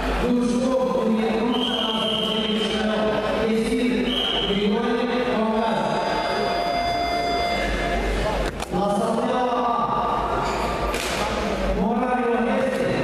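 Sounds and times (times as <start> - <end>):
steady high tone: 4.3 - 8.4.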